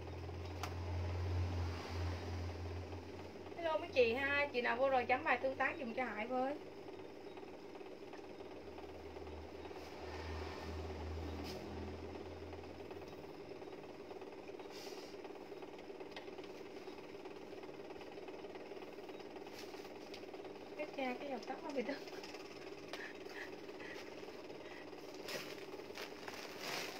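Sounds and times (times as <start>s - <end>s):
low mechanical hum: 0.0s - 26.9s.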